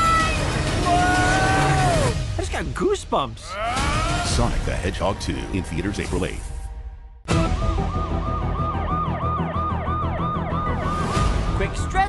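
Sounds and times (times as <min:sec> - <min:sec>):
emergency vehicle siren: 0:07.6 - 0:11.6.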